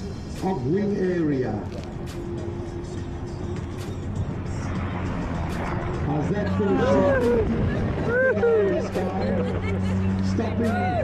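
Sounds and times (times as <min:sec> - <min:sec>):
turboprop engine hum: 0:00.0 - 0:11.0
people exclaiming: 0:06.4 - 0:11.0.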